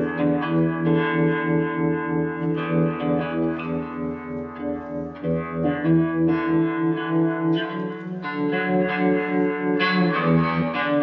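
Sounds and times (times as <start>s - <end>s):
electric guitar sustained notes: 0.0s - 11.0s.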